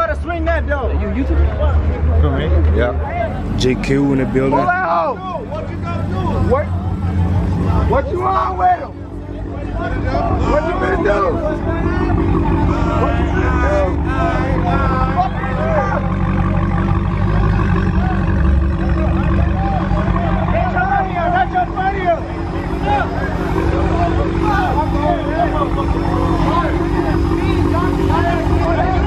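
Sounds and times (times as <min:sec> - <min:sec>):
car engine idling: 0:00.0 - 0:29.0
crowd chattering and shouting: 0:00.0 - 0:29.0.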